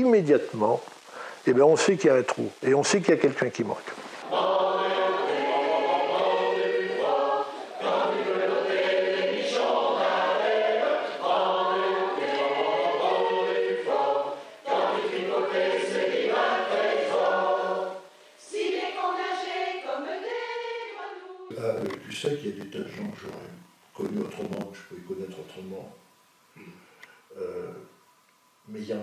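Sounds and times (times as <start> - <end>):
mixed choir singing: 4.2 - 21.5.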